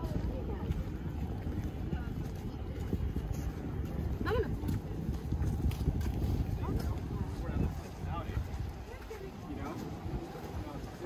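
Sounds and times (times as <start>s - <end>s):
footsteps on walkway: 0.0s - 11.0s
passers-by voices: 0.0s - 11.0s
wind rumbling on microphone: 0.0s - 11.0s.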